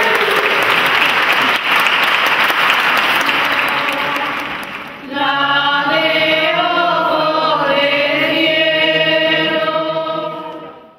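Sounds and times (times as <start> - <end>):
choir singing: 2.8 - 10.9.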